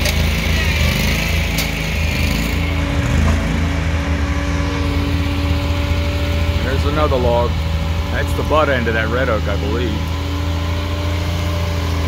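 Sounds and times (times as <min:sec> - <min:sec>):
large engine humming: 0:00.0 - 0:12.0.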